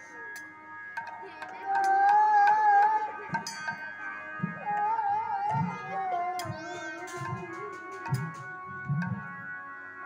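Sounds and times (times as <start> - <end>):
harmonium holding notes: 0.0 - 10.0
high voice singing: 1.2 - 8.8
hand cymbal clicks: 1.8 - 3.8.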